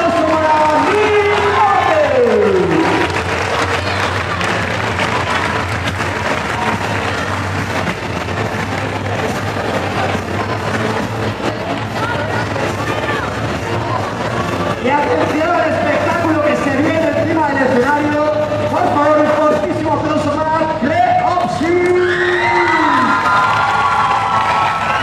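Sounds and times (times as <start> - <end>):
audience applauding and cheering: 0.0 - 11.3, 21.7 - 25.0.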